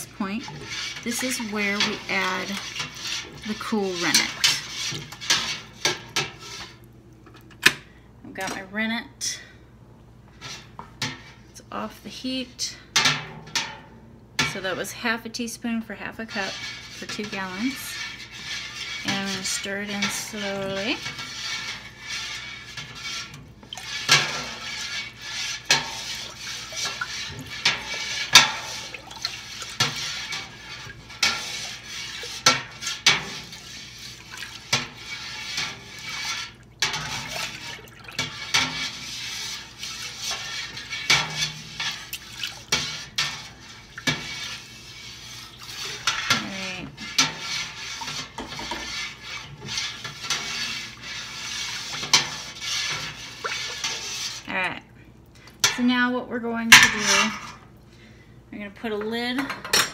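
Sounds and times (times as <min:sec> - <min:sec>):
milk swishing: 0:00.0 - 0:06.9, 0:16.3 - 0:54.6.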